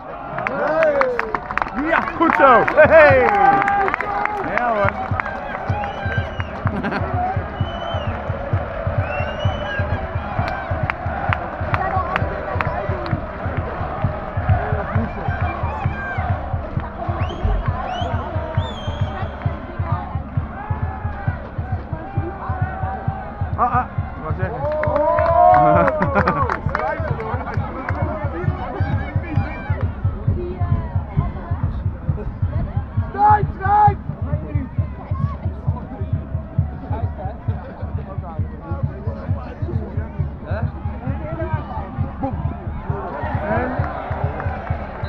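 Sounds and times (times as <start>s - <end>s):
crowd singing and chanting: 4.7s - 45.0s.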